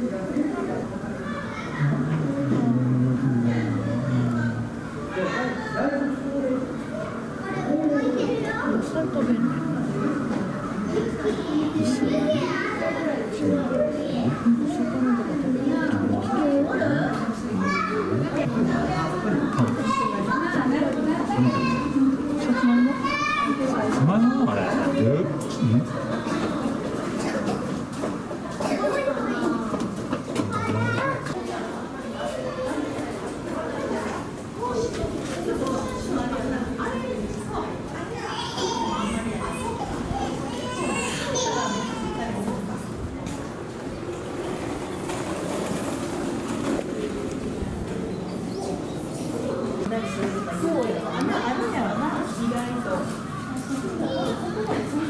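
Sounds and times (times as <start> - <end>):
chatter of people and children: 0.0 - 55.0.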